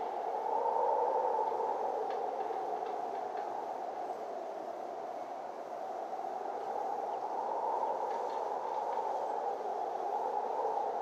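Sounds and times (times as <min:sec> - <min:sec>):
faint ticks: 0:01.4 - 0:04.1, 0:07.9 - 0:09.4.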